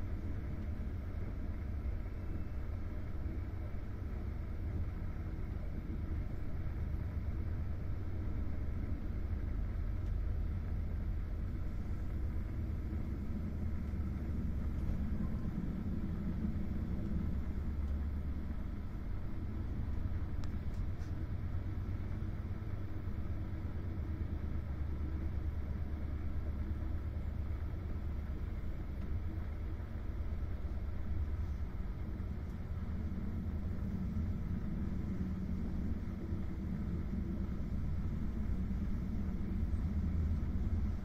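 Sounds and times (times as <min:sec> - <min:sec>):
train wheels on track rumbling: 0:00.0 - 0:41.0.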